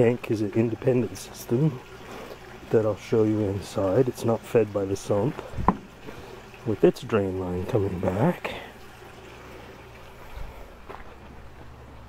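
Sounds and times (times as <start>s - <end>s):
water trickling into a tank: 0.0s - 12.0s
dull thump: 5.5s - 5.9s.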